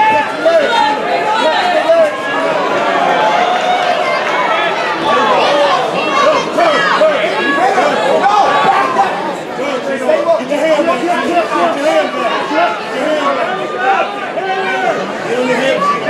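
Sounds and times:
crowd shouting: 0.0 - 16.0.

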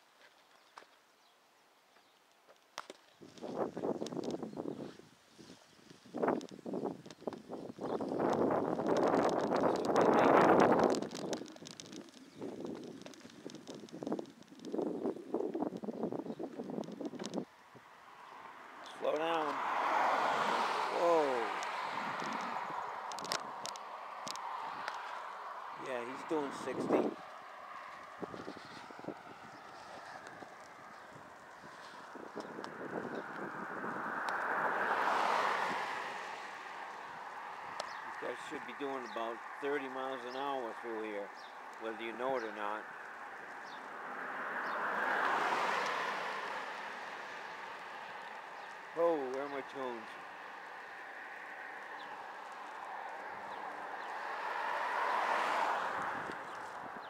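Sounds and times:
wind rushing over microphone: 3.1 - 57.0
car passing: 8.2 - 15.5, 16.8 - 57.0.

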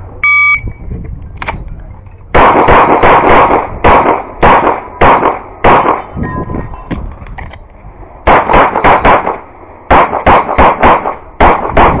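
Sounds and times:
shot timer beep: 0.2 - 0.8
pistol shots: 2.3 - 6.2, 8.2 - 12.0.

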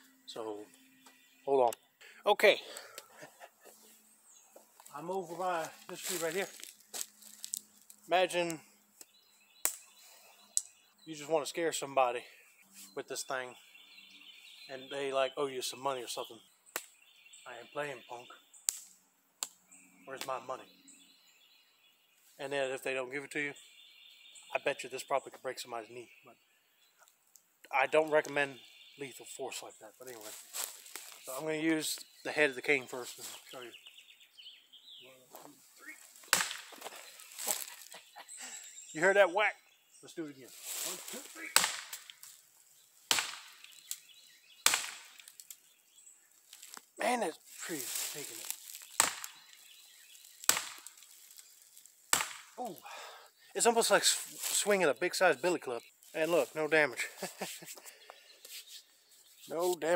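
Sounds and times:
cane whacking a tree trunk: 36.2 - 36.9, 41.2 - 42.2, 43.1 - 43.8, 44.6 - 45.3, 48.8 - 49.4, 50.4 - 51.0, 52.1 - 52.6
person speaking: 47.0 - 48.4, 59.5 - 59.9.

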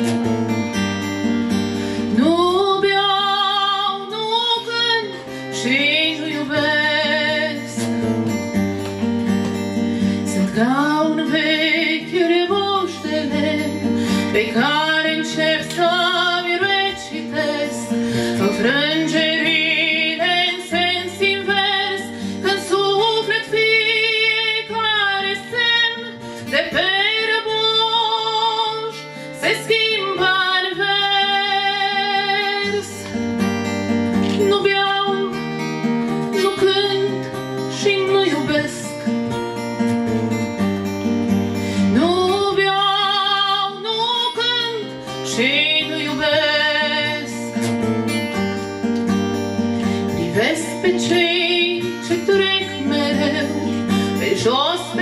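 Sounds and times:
acoustic guitar strumming: 0.0 - 55.0
woman singing with vibrato: 2.0 - 8.2, 10.1 - 33.2, 34.2 - 39.6, 41.7 - 48.1, 49.8 - 55.0.

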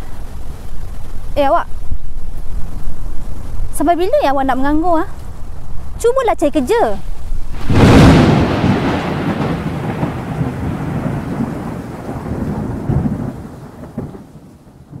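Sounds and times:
rain hiss: 0.0 - 15.0
rolling thunder rumble: 0.0 - 15.0
loud thunderclap: 7.5 - 15.0.

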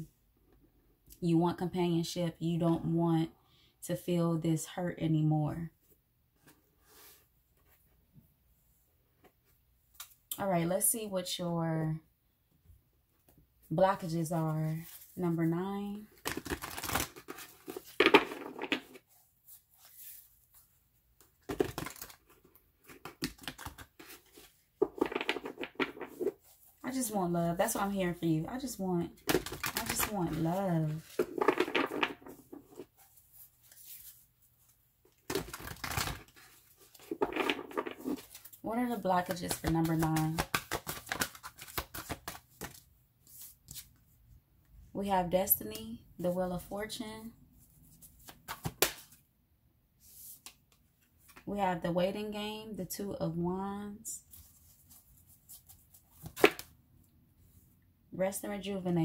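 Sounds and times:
cards being shuffled: 16.2 - 19.0, 21.2 - 26.6, 29.2 - 34.2, 35.2 - 38.6, 39.2 - 43.9, 47.9 - 49.2, 54.3 - 56.7.

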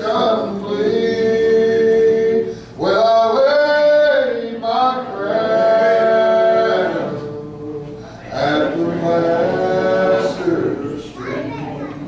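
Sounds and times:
men singing gospel song: 0.0 - 11.1.

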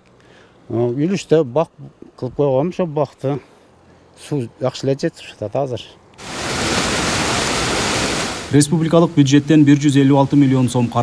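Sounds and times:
water rushing down a canal: 6.2 - 11.0.

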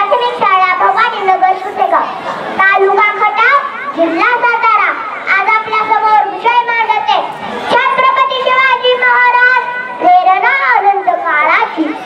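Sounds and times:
girl giving speech into microphone: 0.0 - 12.0.

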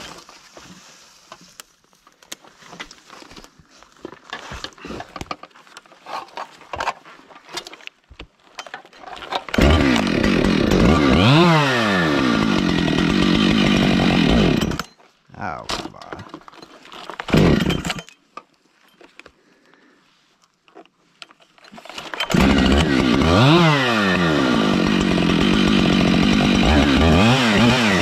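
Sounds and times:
chainsaw running: 9.3 - 14.9, 17.2 - 18.1, 22.0 - 28.0.

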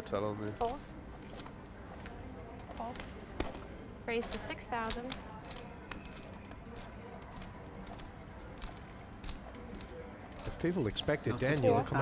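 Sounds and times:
poker chips clicking: 4.2 - 10.6.

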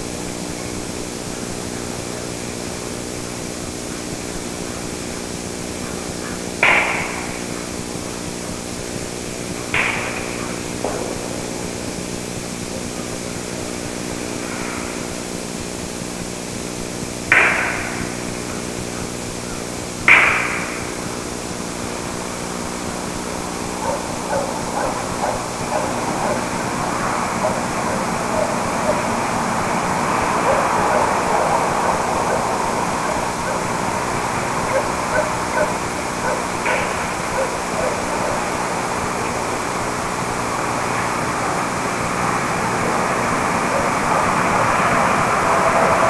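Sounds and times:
steady hum: 0.0 - 46.0
sharp ringing knocks: 6.6 - 7.6, 9.7 - 12.9, 17.3 - 18.4, 20.1 - 21.0
short yelping calls: 23.6 - 38.6.

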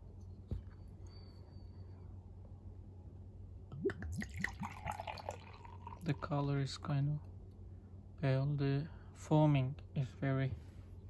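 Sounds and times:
bottle glugging: 3.7 - 6.1
beer splashing into glass: 4.0 - 6.1.

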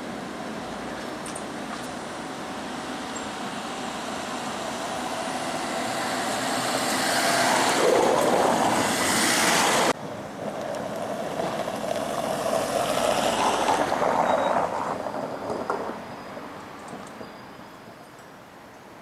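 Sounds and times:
rushing street noise: 0.0 - 19.0
car passing close by: 3.6 - 16.8.

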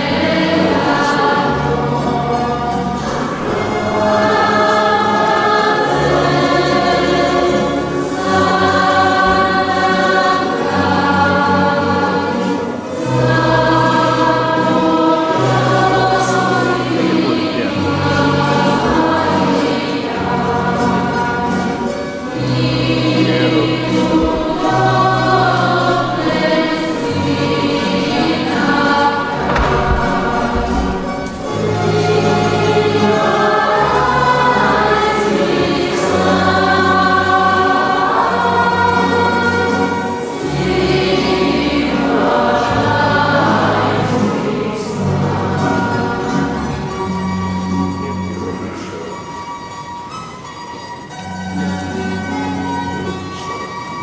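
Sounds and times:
church choir singing a hymn: 0.0 - 49.2.

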